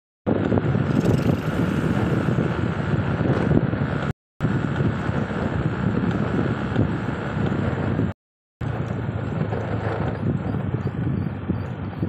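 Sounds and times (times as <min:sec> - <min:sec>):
vehicle driving on paved road: 0:00.3 - 0:12.0
wind noise on microphone: 0:00.3 - 0:12.0.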